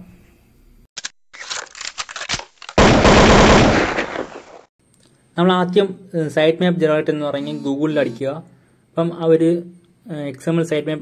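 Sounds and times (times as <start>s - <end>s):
burst of rapid crackling: 1.4s - 4.7s.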